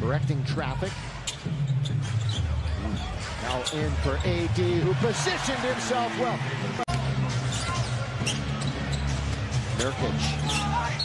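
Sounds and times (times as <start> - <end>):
arena crowd noise: 2.0 - 11.0.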